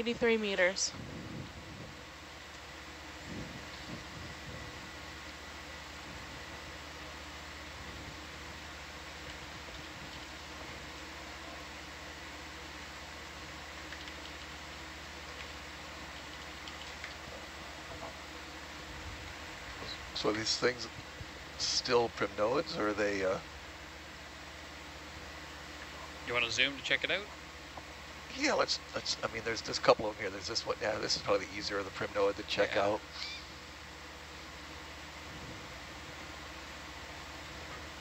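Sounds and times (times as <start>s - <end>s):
low electrical hum: 0.0s - 38.0s
steady background hiss: 0.0s - 38.0s.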